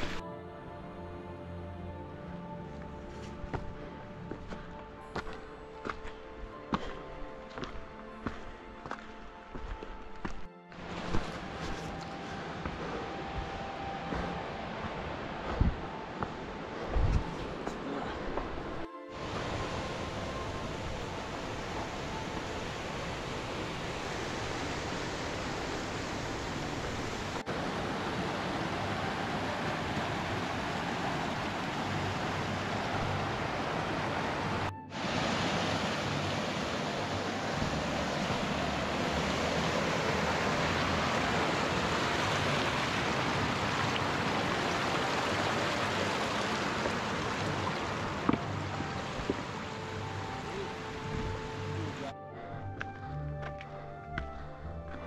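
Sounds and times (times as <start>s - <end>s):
creek rushing over rocks: 0.0s - 0.2s, 10.7s - 52.0s.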